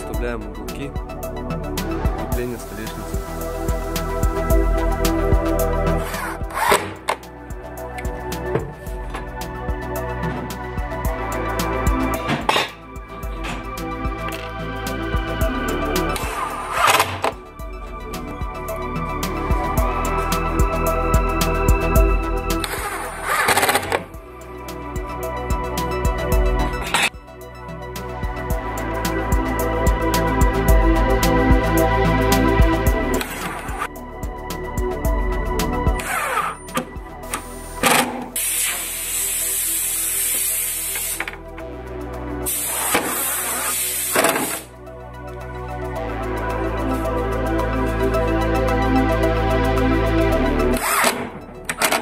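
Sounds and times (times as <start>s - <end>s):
background music with steady beat: 0.0s - 52.0s
cordless drill driving screw: 6.0s - 7.2s, 22.6s - 24.1s.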